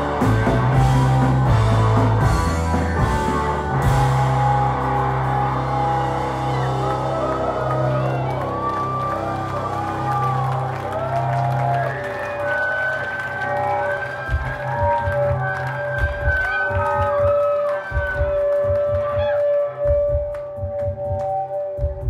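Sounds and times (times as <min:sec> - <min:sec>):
live band music: 0:00.0 - 0:22.0.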